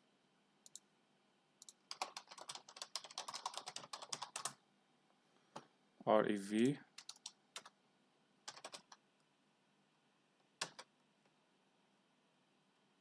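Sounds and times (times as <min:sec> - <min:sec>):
typing on computer keyboard: 0:01.6 - 0:04.6, 0:07.0 - 0:07.8, 0:08.5 - 0:09.0, 0:10.6 - 0:10.9.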